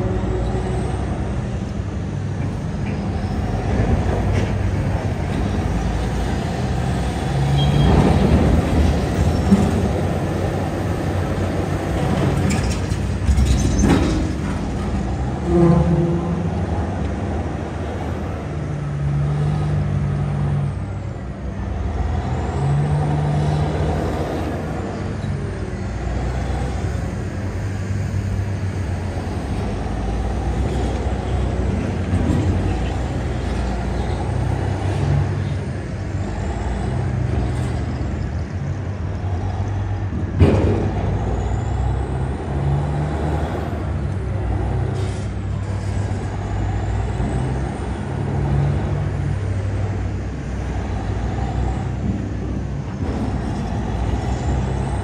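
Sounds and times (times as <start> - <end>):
diesel engine working under load: 0.0 - 55.0.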